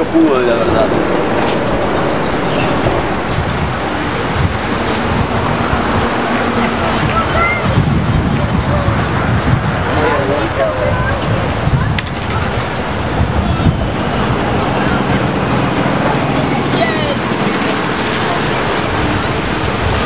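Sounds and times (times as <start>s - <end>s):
faint voices: 0.0s - 20.0s
traffic rumble: 0.0s - 20.0s.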